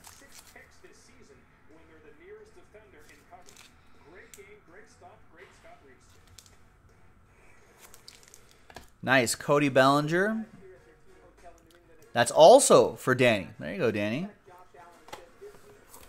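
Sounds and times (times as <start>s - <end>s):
plastic sleeve crinkling: 0.0s - 0.6s, 7.8s - 9.0s.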